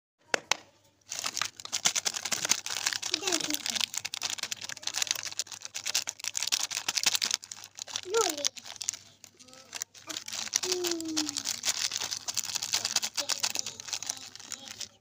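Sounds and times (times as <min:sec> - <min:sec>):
plastic wrapper crinkling: 0:01.0 - 0:15.0.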